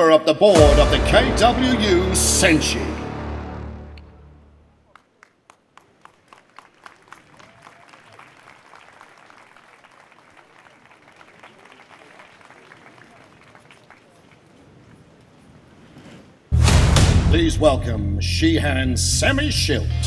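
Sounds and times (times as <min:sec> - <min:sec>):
crowd voices: 0:00.0 - 0:04.9
audience applauding: 0:04.8 - 0:14.6.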